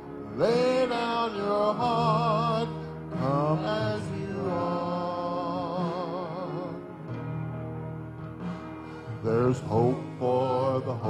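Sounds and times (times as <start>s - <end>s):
person singing with vibrato: 0.3s - 6.9s, 9.0s - 11.0s.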